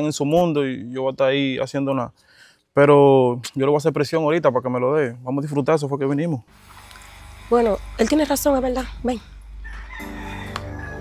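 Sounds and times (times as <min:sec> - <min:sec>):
rooster crowing: 0:09.2 - 0:11.0
background music with low notes: 0:09.9 - 0:11.0.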